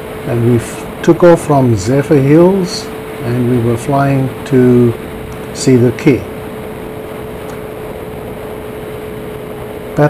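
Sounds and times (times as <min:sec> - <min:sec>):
aircraft engine drone with whine: 0:00.0 - 0:10.0.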